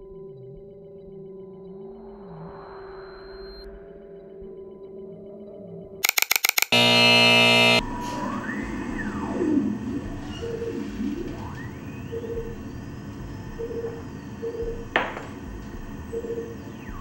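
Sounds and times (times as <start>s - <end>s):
harsh buzzing: 6.0s - 7.8s
short soft beeps: 6.0s - 7.8s.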